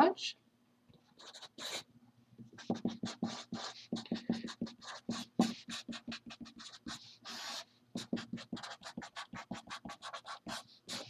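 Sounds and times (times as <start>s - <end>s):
marker writing on paper: 1.1s - 11.0s.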